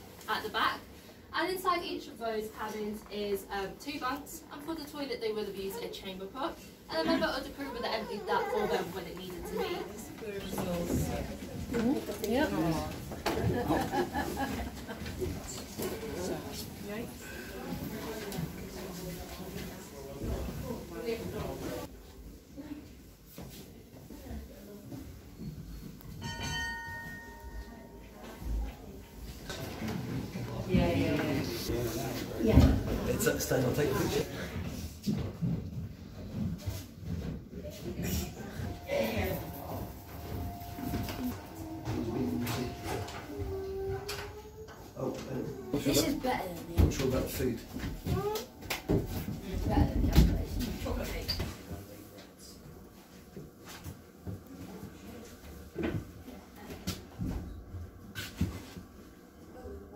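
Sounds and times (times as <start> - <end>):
bell strike ringing: 26.2 - 28.1.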